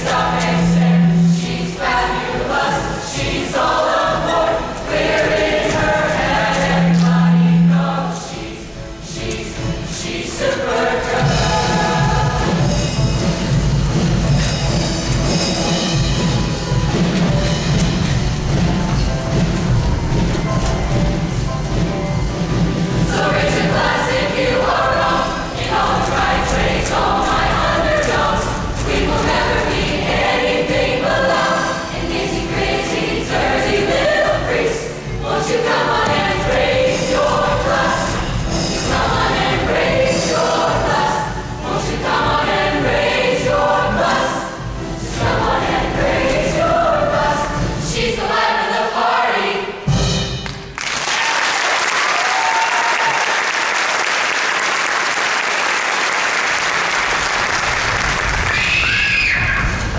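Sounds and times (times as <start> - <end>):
choir singing: 0.0 - 50.0
backing music: 0.0 - 58.6
audience applause: 50.8 - 59.4.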